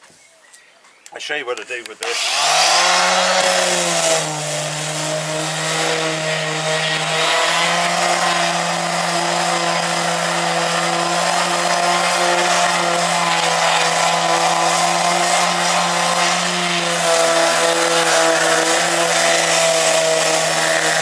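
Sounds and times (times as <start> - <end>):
sandpaper scratching wood: 1.5 - 21.0
electric sander motor hum: 2.0 - 21.0.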